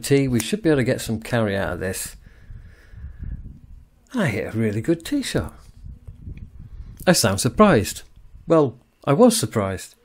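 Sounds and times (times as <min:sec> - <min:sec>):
wind buffeting microphone: 0:00.8 - 0:08.5.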